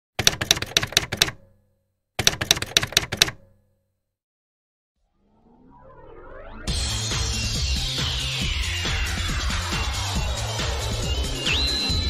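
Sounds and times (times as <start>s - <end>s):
sharp clicks: 0.2s - 1.6s, 2.2s - 3.6s.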